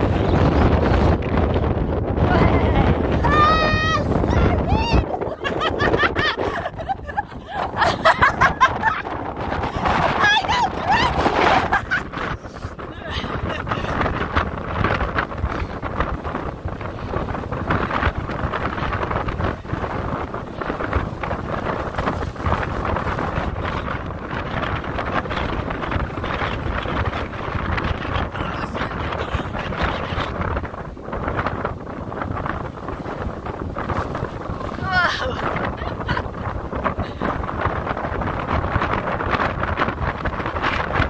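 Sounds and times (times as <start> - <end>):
sea breaking on rocky shore: 0.0 - 41.0
wind buffeting microphone: 0.0 - 41.0.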